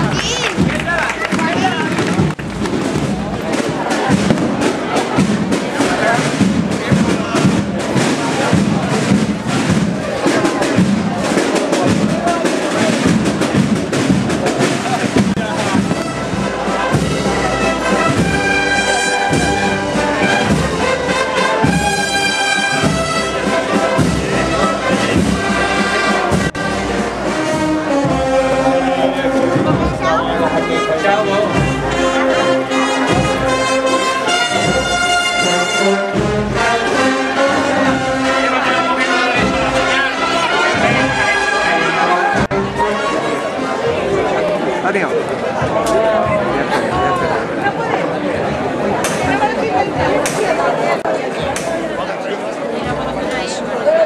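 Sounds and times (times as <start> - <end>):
brass band playing a march: 0.0 - 44.8
crowd voices: 0.0 - 54.0.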